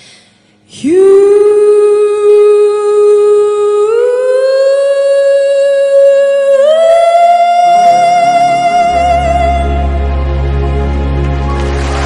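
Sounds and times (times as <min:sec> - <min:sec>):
person singing a long note: 0:00.7 - 0:10.6.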